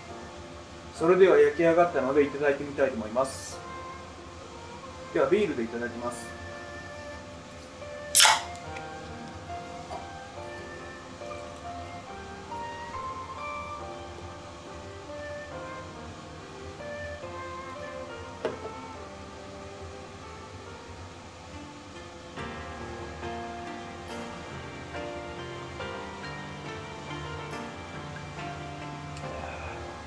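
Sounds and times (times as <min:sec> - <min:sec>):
background music: 0:00.0 - 0:30.0
beer can opening hiss: 0:04.5 - 0:13.6.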